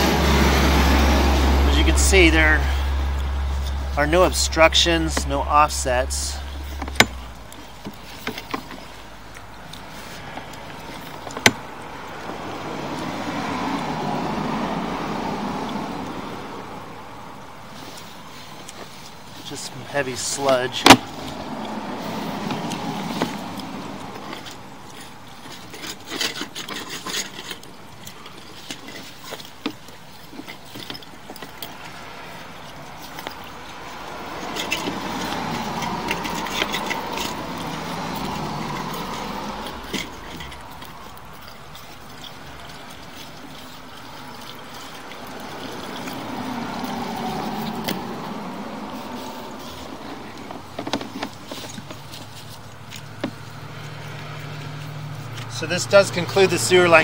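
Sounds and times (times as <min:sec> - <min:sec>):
vehicles passing on street: 0:00.0 - 0:57.0
light clicks and knocks: 0:49.8 - 0:57.0.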